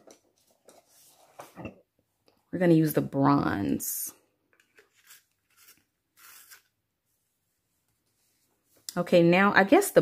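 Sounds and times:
pencil sharpener scraping: 4.6s - 6.8s.

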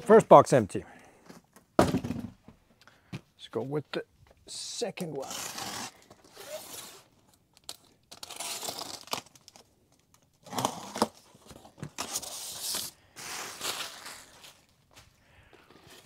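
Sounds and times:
cardboard box ripping and crinkling: 5.2s - 7.1s, 8.1s - 9.6s, 10.4s - 14.7s.

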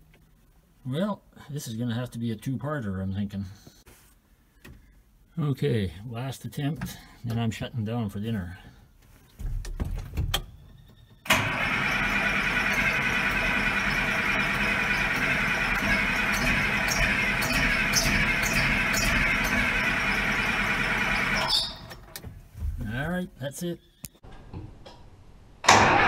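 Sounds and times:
starter cranking diesel engine: 11.3s - 22.2s, 25.7s - 26.0s.

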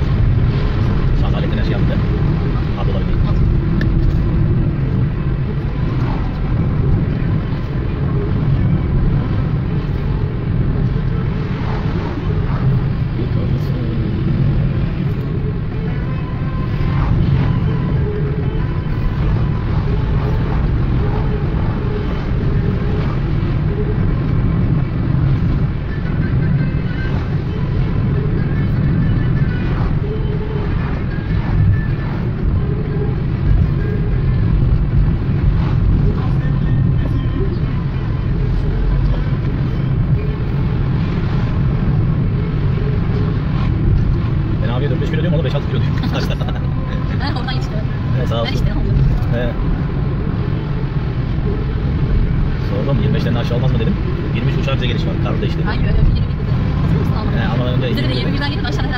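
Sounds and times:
car engine and tyre rumble: 0.0s - 58.9s.

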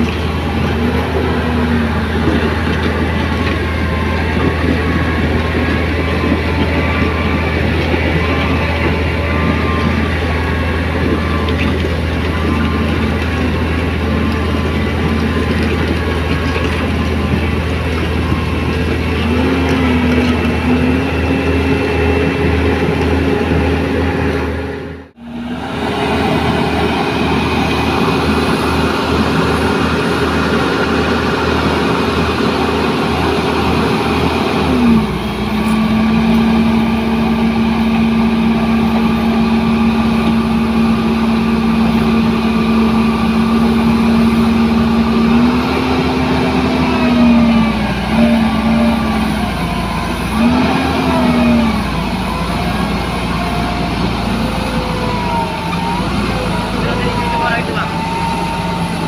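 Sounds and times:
diesel engine running under load: 0.0s - 59.0s.

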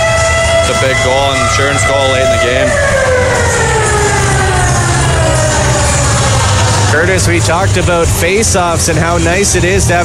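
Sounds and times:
goal siren winding down: 0.0s - 8.2s
arena background noise: 0.0s - 10.0s.

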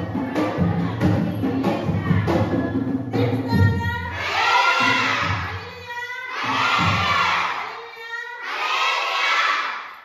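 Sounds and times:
children shouting together: 4.1s - 10.0s.

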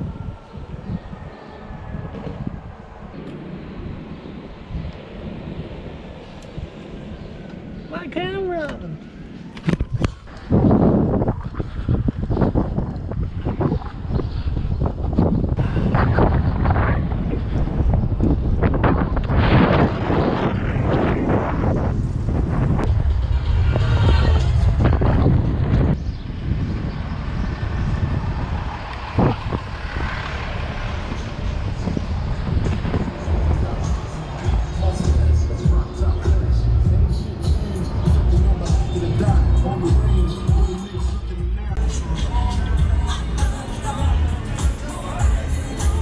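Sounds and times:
wind buffeting microphone: 0.0s - 41.0s
passing vehicles: 0.0s - 46.0s.

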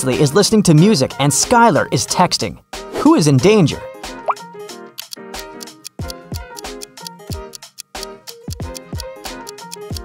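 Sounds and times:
light music with steady beat: 3.8s - 10.0s.

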